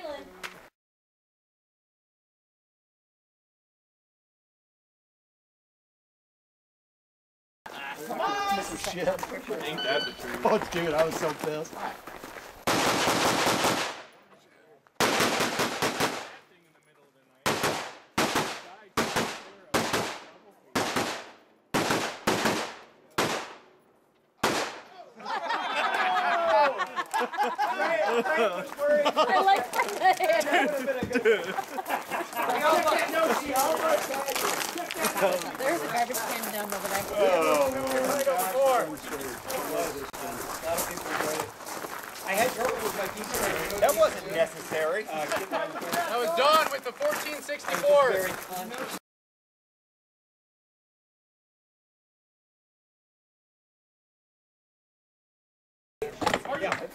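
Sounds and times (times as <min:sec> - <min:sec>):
people talking indistinctly: 0:07.7 - 0:12.1, 0:24.8 - 0:49.0
rifle shots with echo: 0:12.7 - 0:14.2, 0:15.0 - 0:16.4, 0:17.4 - 0:23.7, 0:24.4 - 0:24.9.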